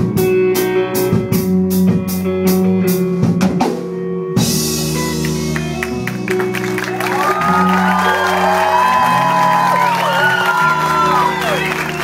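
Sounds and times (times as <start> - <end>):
bass guitar notes: 0.0 - 12.0
electric guitars bending notes: 3.9 - 12.0.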